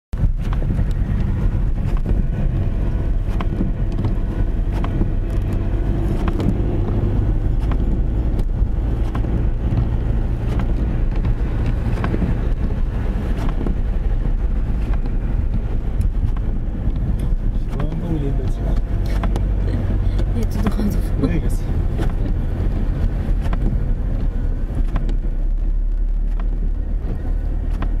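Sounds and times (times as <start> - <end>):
car engine rumble: 0.1 - 28.0
tyres on slushy road: 0.2 - 28.0.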